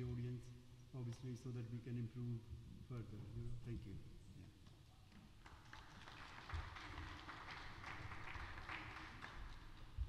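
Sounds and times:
scattered clapping: 5.4s - 10.0s.

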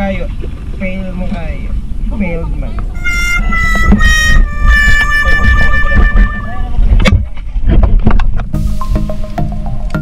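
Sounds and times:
wind and water rumble: 0.0s - 10.0s
two-note horn tone: 3.0s - 6.7s.

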